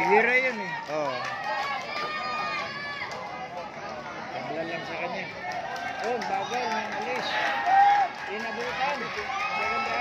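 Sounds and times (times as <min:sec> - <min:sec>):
spectators shouting and cheering: 0:00.0 - 0:10.0
stadium crowd noise: 0:00.0 - 0:10.0.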